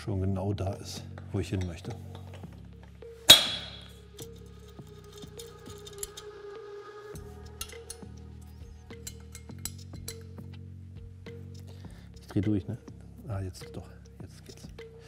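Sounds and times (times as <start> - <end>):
background music: 0.0 - 15.0
sharp metallic clink: 3.3 - 4.4
hand tool clicking on metal: 3.3 - 6.3.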